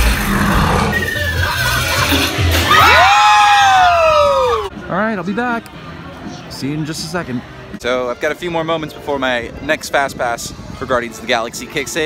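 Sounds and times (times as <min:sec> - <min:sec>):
riders screaming and shouting: 0:00.8 - 0:04.7
long falling scream: 0:02.6 - 0:04.7.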